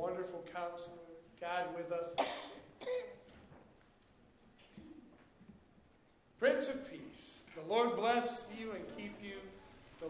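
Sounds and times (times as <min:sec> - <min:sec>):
person coughing: 0:02.2 - 0:03.2
throat clearing: 0:02.2 - 0:03.2, 0:04.7 - 0:05.2
person speaking: 0:06.4 - 0:10.0.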